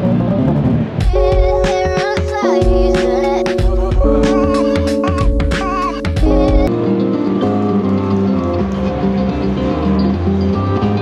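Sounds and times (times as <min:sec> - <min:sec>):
amplified harp-like plucked melody: 0:01.1 - 0:09.1.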